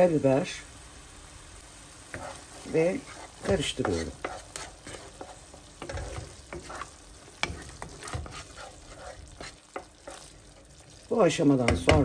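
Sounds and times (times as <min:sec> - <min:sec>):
sauce simmering sizzle: 0:00.0 - 0:12.0
spoon scraping a pan: 0:02.1 - 0:11.0.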